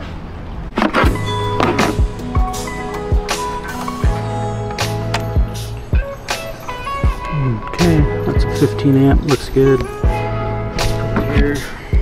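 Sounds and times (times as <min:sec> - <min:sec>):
music with held tones and low beat: 0:01.1 - 0:12.0.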